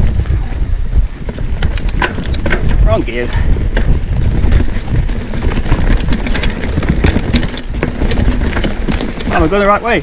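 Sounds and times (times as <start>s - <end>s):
bike tyres rumbling on dirt: 0.0s - 10.0s
bike chain and frame rattling: 1.1s - 10.0s.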